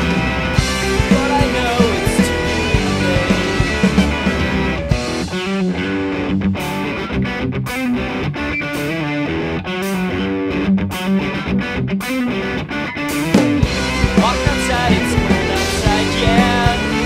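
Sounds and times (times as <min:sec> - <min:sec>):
distorted electric guitar chords: 0:00.0 - 0:17.0.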